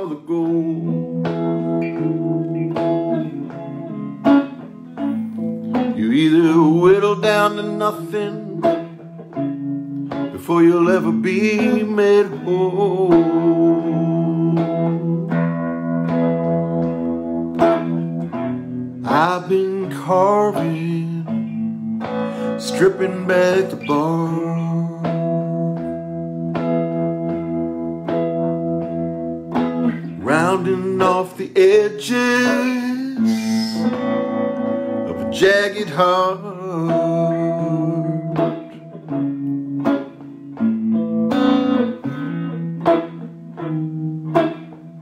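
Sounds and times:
slow electric guitar: 0.0 - 45.0.

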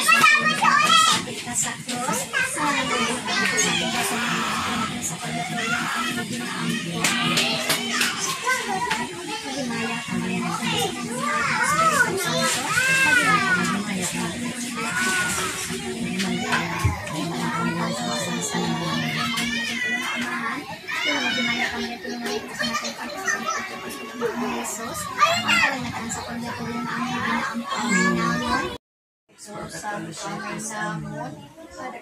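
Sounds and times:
children calling and shouting: 0.0 - 32.0.

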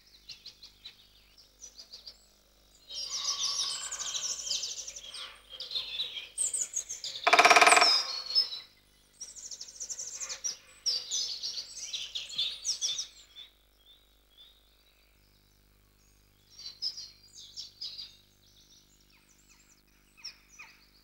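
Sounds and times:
songbirds trilling and chirping: 0.4 - 6.3, 7.3 - 8.3
loud nasal bird call: 7.3 - 8.2.

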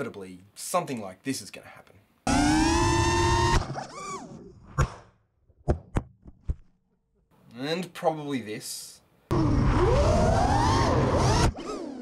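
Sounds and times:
brief motor whirs: 2.3 - 4.5, 9.3 - 12.0
drone motors whining: 2.3 - 4.7, 9.3 - 12.0.

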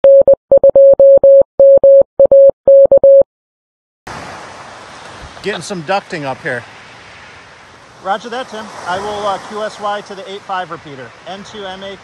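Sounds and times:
morse code tone: 0.0 - 3.2.

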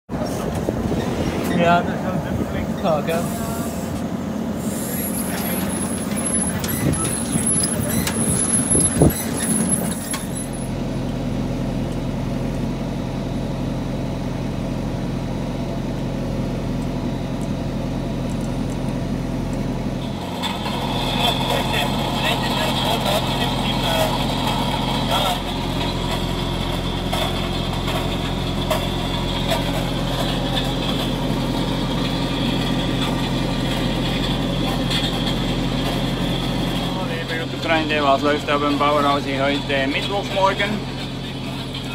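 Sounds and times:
wind buffeting microphone: 0.1 - 3.4, 6.7 - 9.4
harvester machinery: 0.1 - 41.9
tractor engine running: 0.1 - 41.9.

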